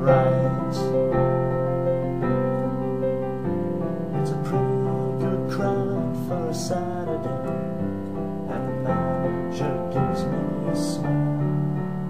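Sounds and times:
piano playing: 0.0 - 12.0.

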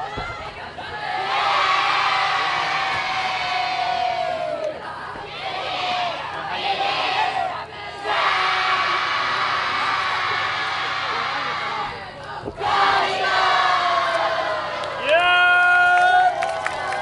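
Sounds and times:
group shouting a cheer in unison: 1.0 - 11.9, 12.6 - 17.0.

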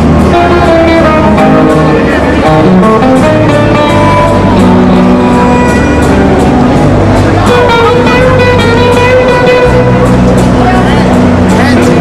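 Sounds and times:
live country band music: 0.0 - 12.0.

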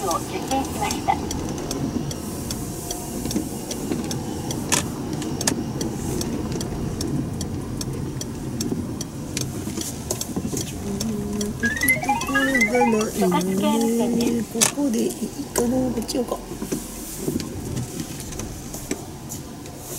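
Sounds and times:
car road and engine noise: 0.0 - 11.6, 13.3 - 19.9
rising electronic notes: 11.6 - 13.4.

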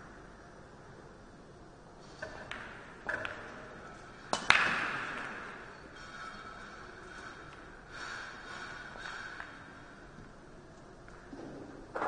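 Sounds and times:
pool balls clattering: 2.0 - 12.0
cue ball cracking into balls: 2.2 - 5.8.

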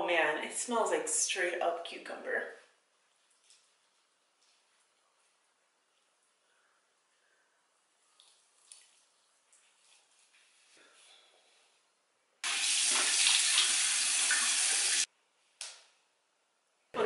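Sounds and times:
sink faucet running: 12.4 - 15.1
splashing from face rinsing: 12.4 - 15.1.

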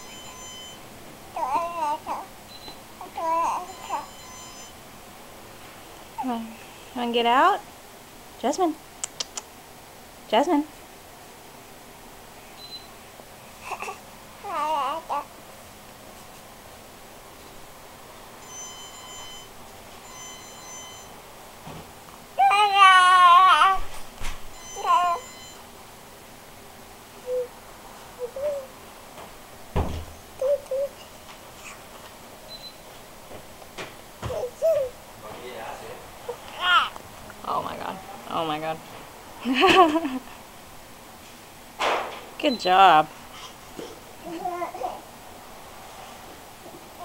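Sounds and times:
baby babbling: 1.4 - 2.3, 3.0 - 4.2, 13.6 - 15.3, 22.4 - 23.8, 24.8 - 25.3, 27.2 - 27.5, 28.2 - 28.7, 30.4 - 31.8, 34.3 - 35.0, 36.3 - 37.0, 43.8 - 45.0
baby squealing: 1.4 - 2.3, 22.4 - 23.8, 24.8 - 25.3.

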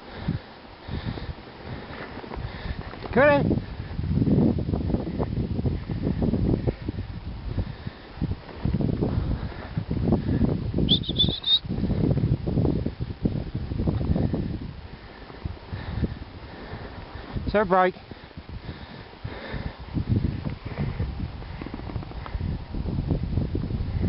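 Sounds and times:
high rising chirp: 10.9 - 11.6.

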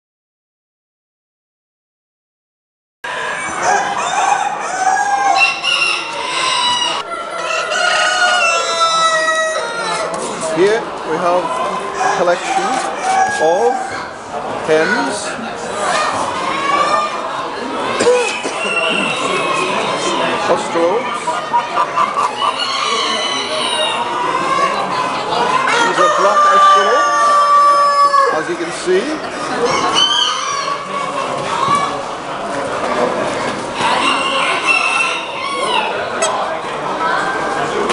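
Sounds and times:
roosters crowing: 3.1 - 10.2, 11.7 - 14.0, 18.1 - 20.4, 22.0 - 24.8, 25.5 - 28.6, 29.4 - 31.2, 33.8 - 36.1
chickens clucking: 3.1 - 37.9
rooster crowing: 3.6 - 10.0, 26.0 - 28.4.

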